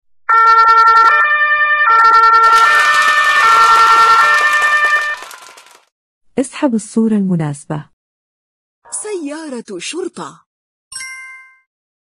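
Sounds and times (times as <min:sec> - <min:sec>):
two-tone ambulance siren: 0:00.3 - 0:05.3.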